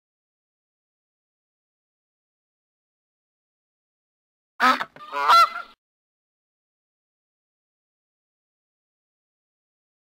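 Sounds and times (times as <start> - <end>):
goose honking: 4.6 - 5.8.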